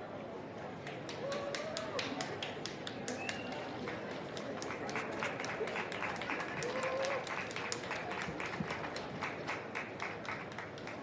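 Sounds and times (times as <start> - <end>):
audience applauding: 1.1 - 11.0.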